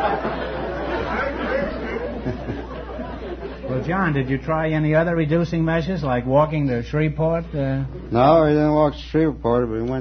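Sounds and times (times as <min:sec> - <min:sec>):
audience laughing: 0:00.0 - 0:04.4.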